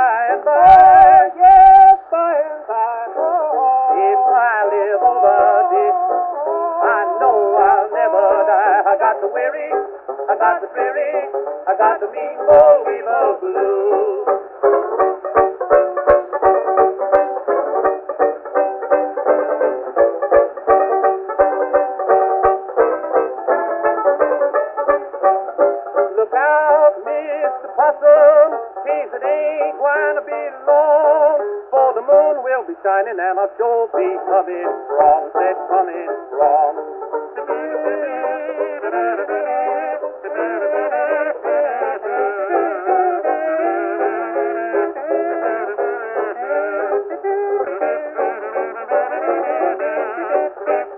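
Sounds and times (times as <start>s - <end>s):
banjo plucks: 0.0s - 50.9s
kazoo melody: 3.2s - 31.6s, 34.1s - 50.9s
kazoos buzzing a blues melody: 37.5s - 50.9s.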